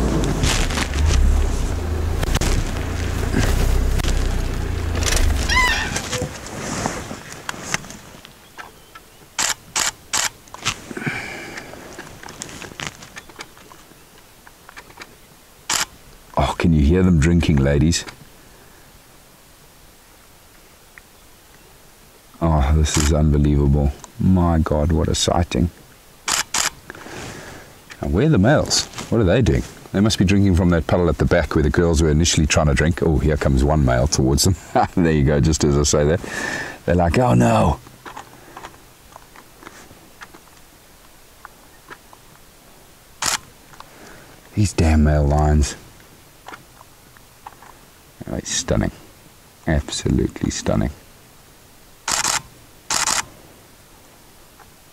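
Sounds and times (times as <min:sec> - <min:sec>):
short rush of noise: 0:00.0 - 0:07.8
steady low hiss: 0:00.0 - 0:54.9
faint small clicks: 0:43.2 - 0:44.2.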